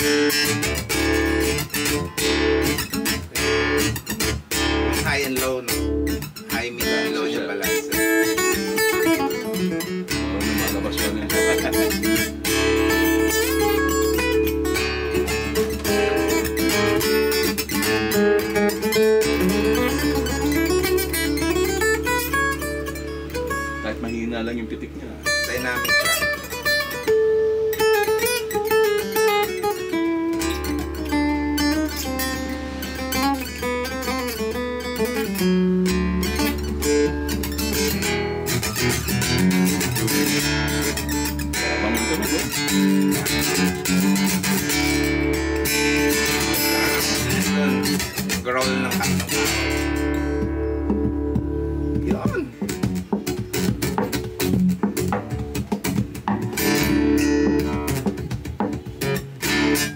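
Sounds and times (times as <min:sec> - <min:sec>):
acoustic guitar picked notes: 0:00.0 - 0:59.9
acoustic guitar strumming: 0:00.0 - 0:59.9.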